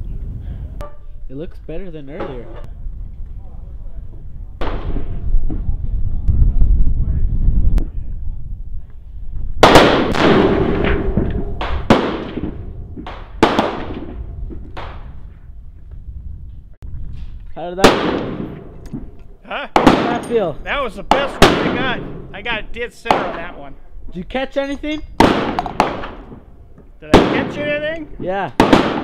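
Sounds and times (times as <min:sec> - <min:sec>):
low rumble: 0:02.7 - 0:17.5
rifle gunshots with echo: 0:04.6 - 0:05.2, 0:09.6 - 0:15.1, 0:17.8 - 0:19.1, 0:19.7 - 0:22.4, 0:23.1 - 0:23.6, 0:25.2 - 0:26.5, 0:27.1 - 0:27.9, 0:28.5 - 0:29.0.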